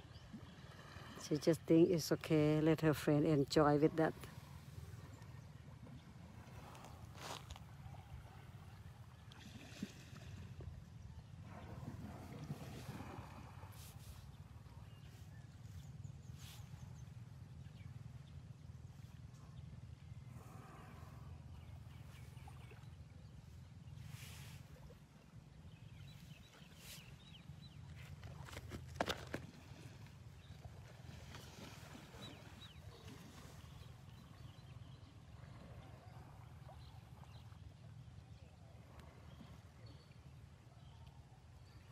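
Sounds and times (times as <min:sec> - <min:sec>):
river water splashing: 0:00.0 - 0:14.8, 0:26.3 - 0:34.5
steady low rumble: 0:02.2 - 0:09.4, 0:10.2 - 0:31.0.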